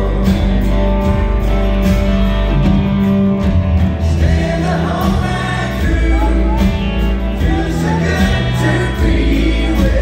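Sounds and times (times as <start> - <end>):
country-rock band playing: 0.0 - 10.0
harmony vocals singing: 4.0 - 10.0.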